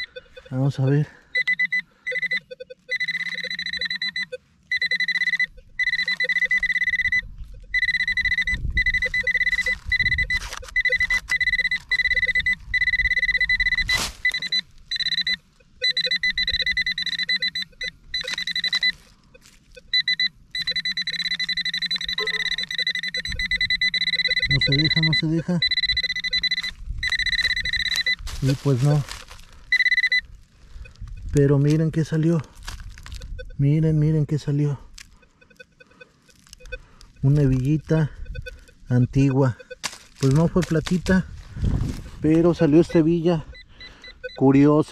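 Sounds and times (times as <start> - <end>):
fast pulsing beep: 0.0 - 19.0, 19.8 - 29.1, 29.7 - 30.2, 33.2 - 34.6, 35.2 - 41.3, 42.2 - 44.9
metal detector alert tone: 0.0 - 32.5, 33.1 - 44.9
probe in loose soil: 0.0 - 44.9.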